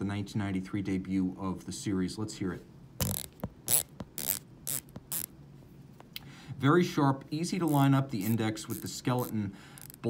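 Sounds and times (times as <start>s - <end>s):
dive bezel ratcheting clicks: 3.0s - 5.3s, 7.7s - 10.0s.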